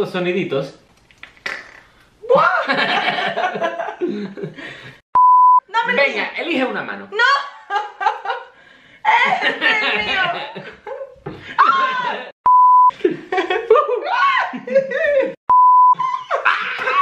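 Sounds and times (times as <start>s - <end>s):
excited voices: 2.2s - 3.0s, 9.1s - 10.6s, 11.4s - 12.4s, 13.7s - 15.4s, 16.0s - 17.0s
people laughing: 2.3s - 4.9s, 9.1s - 15.4s, 16.0s - 17.0s
censor bleep: 5.2s - 5.7s, 12.5s - 12.9s, 15.5s - 16.0s.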